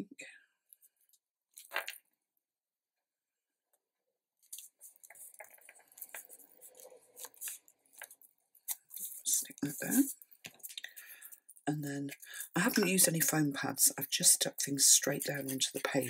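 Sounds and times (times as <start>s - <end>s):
paper rustling: 4.4s - 12.9s, 15.1s - 16.0s.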